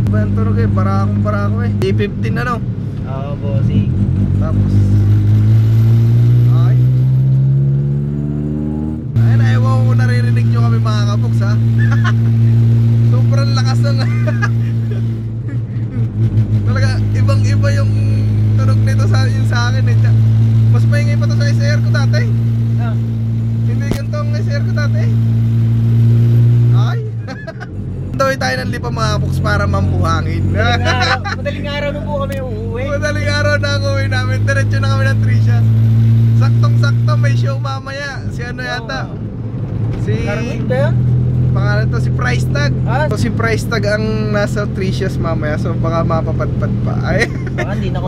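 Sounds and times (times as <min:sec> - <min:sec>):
loud car engine accelerating: 0:00.0 - 0:48.0.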